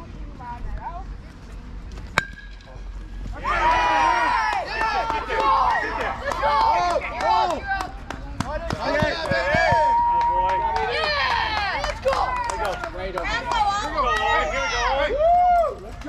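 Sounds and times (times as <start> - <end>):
crowd shouting and cheering: 3.2 - 16.0.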